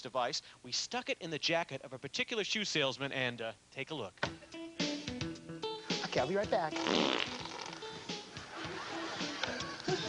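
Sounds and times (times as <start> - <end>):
light background music: 4.2 - 10.0
fart sound effect: 6.7 - 8.0.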